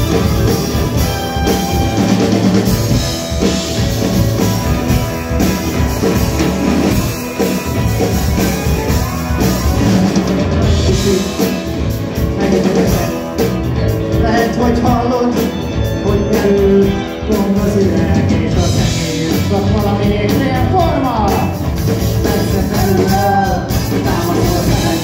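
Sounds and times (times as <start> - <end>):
bass guitar: 0.0 - 25.0
drum kit beat: 0.0 - 25.0
electric guitars: 0.0 - 25.0.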